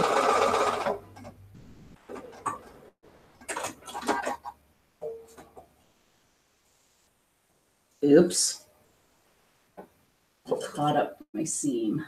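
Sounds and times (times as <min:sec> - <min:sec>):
sewing machine stitching: 0:00.0 - 0:01.4.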